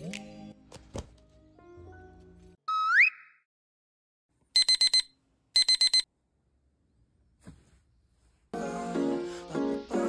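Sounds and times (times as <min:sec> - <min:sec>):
background music: 0:00.0 - 0:02.6, 0:08.6 - 0:10.0
rising whistle sound effect: 0:02.7 - 0:03.4
alarm beeping: 0:04.6 - 0:06.1.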